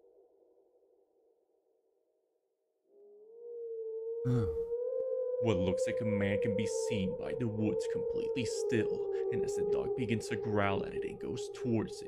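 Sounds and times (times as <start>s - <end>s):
eerie drone tone: 3.8s - 12.0s.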